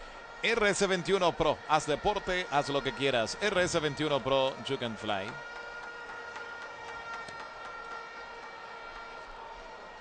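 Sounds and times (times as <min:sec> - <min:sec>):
ballpark crowd noise: 0:00.0 - 0:10.0.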